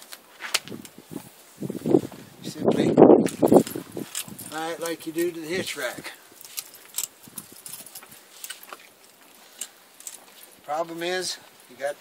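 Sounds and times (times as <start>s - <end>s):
metal clinks and rattles: 3.2s - 11.9s.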